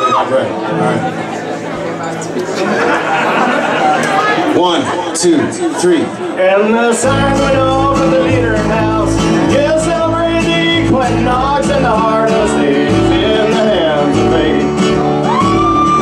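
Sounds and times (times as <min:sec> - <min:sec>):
strummed acoustic guitar: 0:06.7 - 0:16.0.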